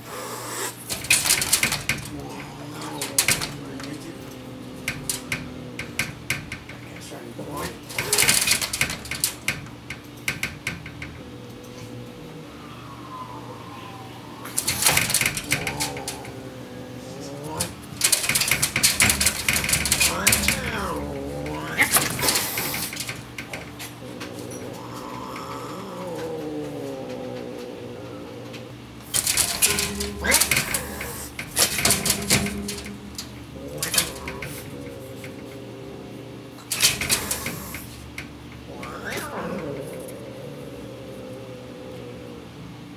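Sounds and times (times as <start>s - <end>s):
cats yowling: 0.0s - 42.9s
screen door rattling: 0.7s - 12.3s, 13.9s - 42.4s.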